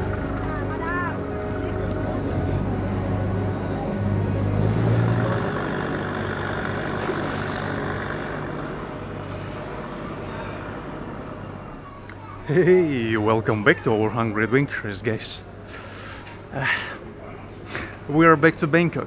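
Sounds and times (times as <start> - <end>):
boat engine humming: 0.0 - 13.4.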